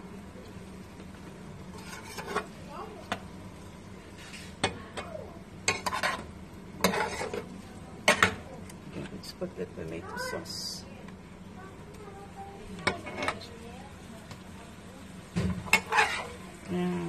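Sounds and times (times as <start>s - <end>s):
low steady hum: 0.0s - 17.0s
metal spoon scraping frying pan: 1.7s - 2.6s, 5.6s - 8.4s, 12.8s - 13.5s, 15.6s - 16.4s.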